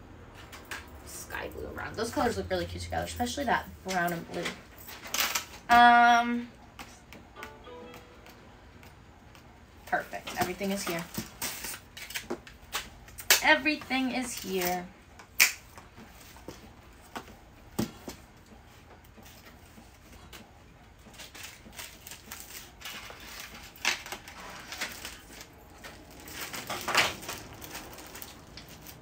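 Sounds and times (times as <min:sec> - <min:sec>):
plastic bags rustling: 0:21.1 - 0:29.0.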